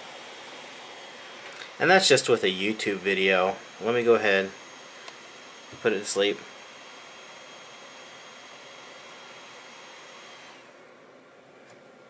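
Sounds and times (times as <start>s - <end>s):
laptop fan hissing and whining: 0.0s - 12.0s.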